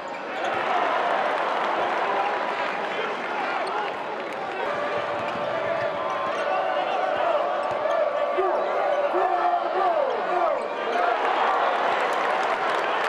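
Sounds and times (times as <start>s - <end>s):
crowd voices and shouting: 0.0s - 13.0s.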